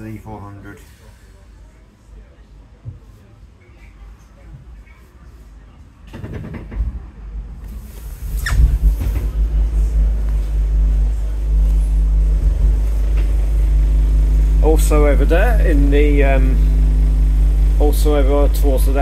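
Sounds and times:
diesel bus engine drone: 0:07.7 - 0:19.0.

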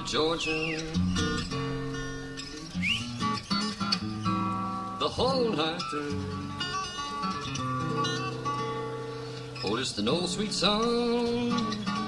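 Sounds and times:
person singing: 0:00.0 - 0:01.1, 0:05.0 - 0:06.5, 0:09.6 - 0:12.0
acoustic string band ballad: 0:04.3 - 0:12.0.

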